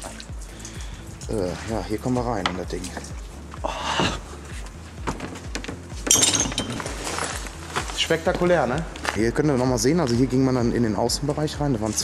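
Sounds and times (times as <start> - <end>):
background music with steady beat: 0.0 - 12.0
debris crunching and clinking: 5.0 - 8.1.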